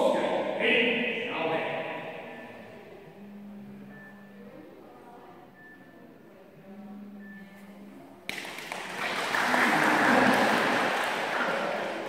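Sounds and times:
voices: 0:00.0 - 0:12.0
crowd applause: 0:08.3 - 0:12.0.

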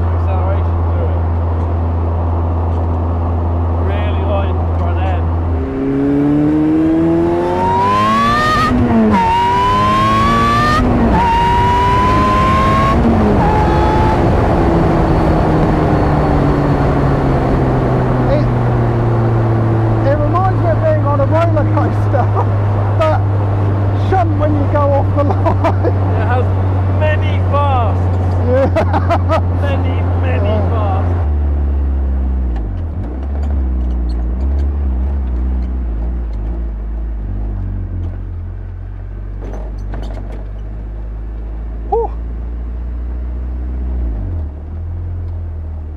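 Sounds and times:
car engine accelerating hard: 0:00.0 - 0:45.9.

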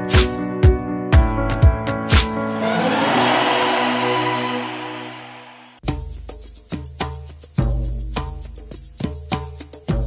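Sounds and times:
held musical chord: 0:02.4 - 0:05.8
noisy whoosh: 0:02.4 - 0:05.8.

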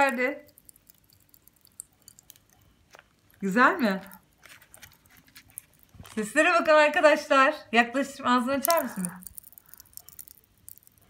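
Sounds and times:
popping candy crackling: 0:00.0 - 0:06.7, 0:08.4 - 0:11.0.

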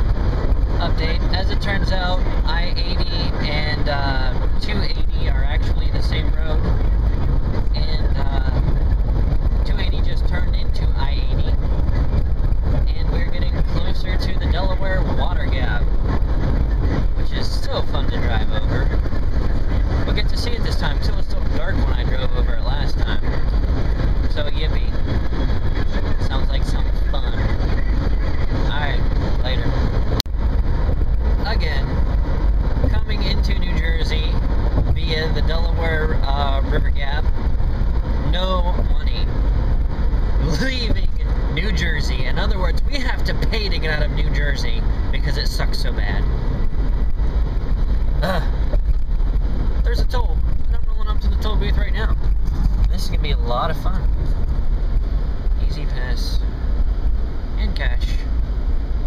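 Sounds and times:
car cabin road and engine noise: 0:00.0 - 0:59.0.

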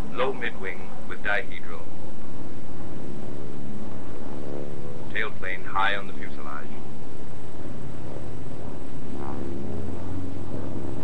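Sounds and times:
propeller aircraft engine droning: 0:00.0 - 0:11.0.

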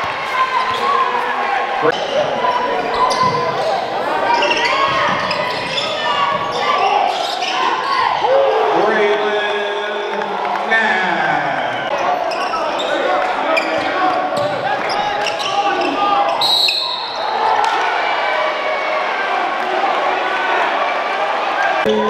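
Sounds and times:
crowd and player voices: 0:00.0 - 0:22.0
sneaker squeaks: 0:01.9 - 0:08.1, 0:11.9 - 0:17.3.

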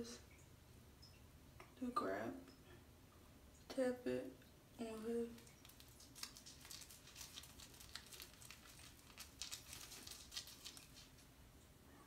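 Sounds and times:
brush bristles scrubbing skin: 0:05.4 - 0:11.3.

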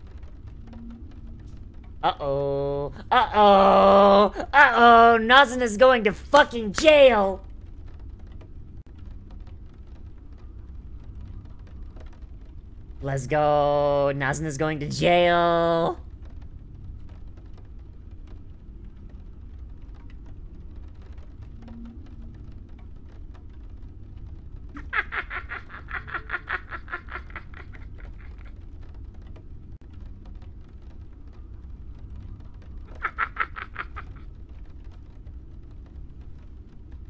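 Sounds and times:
faint low hum: 0:00.0 - 0:37.0.

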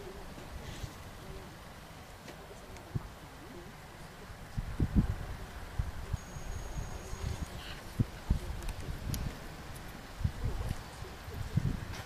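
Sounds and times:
wind buffeting microphone: 0:04.2 - 0:12.0
thin high tone: 0:06.1 - 0:07.9.

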